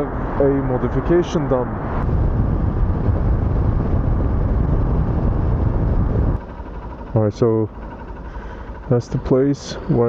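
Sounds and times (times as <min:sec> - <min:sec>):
wind rushing over camera: 0:00.0 - 0:06.9
motorcycle engine running: 0:02.2 - 0:10.0.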